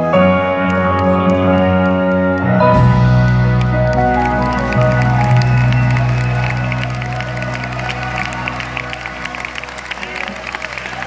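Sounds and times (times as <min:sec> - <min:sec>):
audience clapping and cheering: 0:00.0 - 0:11.0
rock band sustained chord: 0:00.4 - 0:11.0.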